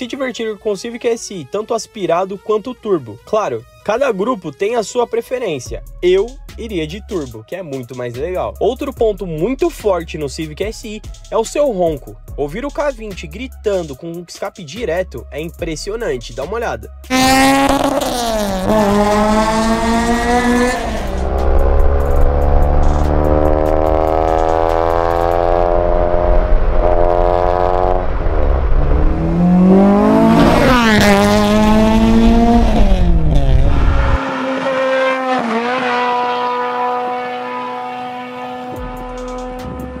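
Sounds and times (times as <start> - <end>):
car engine revving hard: 17.1 - 40.0.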